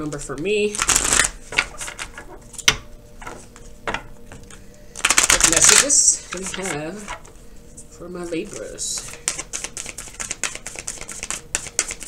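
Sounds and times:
cards snapping: 0.7s - 2.2s, 4.5s - 6.8s, 9.0s - 12.0s
card edges flicking: 8.9s - 12.0s.

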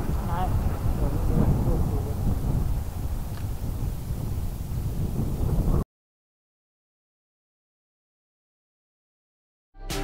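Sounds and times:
wind buffeting microphone: 0.0s - 5.8s.

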